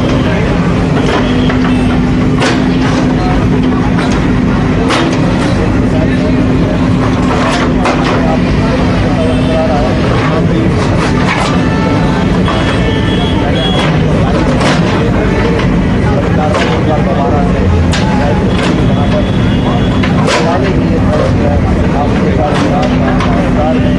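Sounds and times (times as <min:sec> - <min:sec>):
crowd voices: 0:00.0 - 0:23.9
excavator diesel engine: 0:00.0 - 0:23.9.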